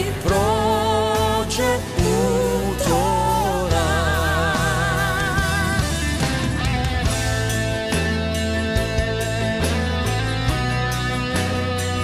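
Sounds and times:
bass line: 0.0 - 12.0
piano and keyboard chords: 0.0 - 12.0.

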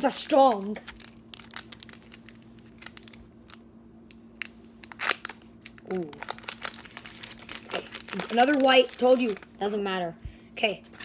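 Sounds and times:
foil pack crinkling: 0.0 - 3.6, 4.3 - 9.8
faint steady hum: 0.0 - 11.0
foil tearing: 0.3 - 3.2, 4.8 - 9.5.

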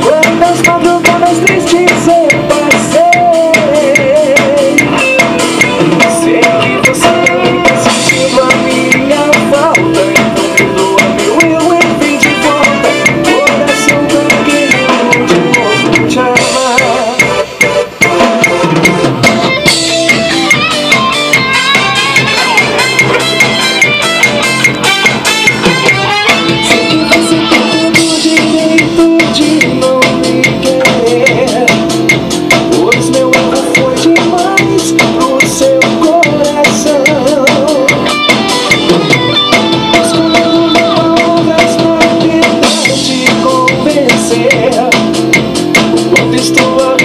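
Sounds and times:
drum kit playing: 0.0 - 47.0
guitar melody: 0.0 - 47.0
pop song backing track: 0.0 - 47.0.

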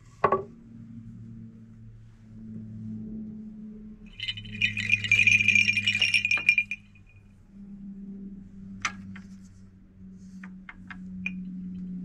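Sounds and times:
sharp bell clinks: 4.1 - 7.2
sleigh bells jingling: 4.1 - 7.2.

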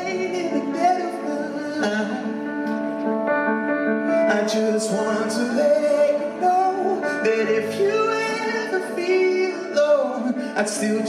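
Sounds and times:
man singing a wordless note: 0.0 - 2.5, 4.1 - 11.0
keyboard chords: 0.0 - 11.0.

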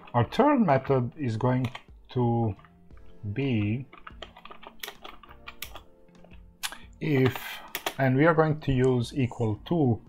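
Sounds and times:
computer keyboard key clicks: 6.6 - 8.0.

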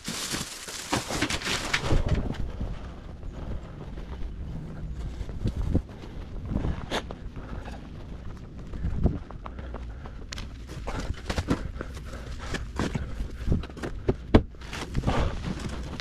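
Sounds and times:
plastic bags crinkling: 0.0 - 2.0
wind rumble on microphone: 1.6 - 12.0.

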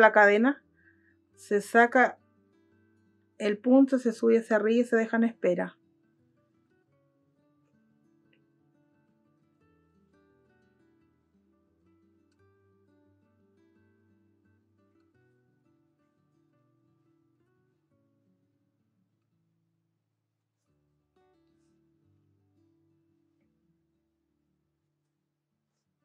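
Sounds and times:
faint plucked acoustic guitar: 2.1 - 3.4, 5.8 - 19.6, 20.6 - 24.6.

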